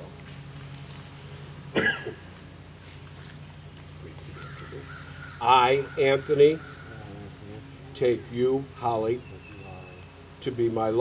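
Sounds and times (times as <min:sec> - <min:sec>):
steady low hum: 0:00.0 - 0:11.0
person coughing: 0:01.7 - 0:02.2.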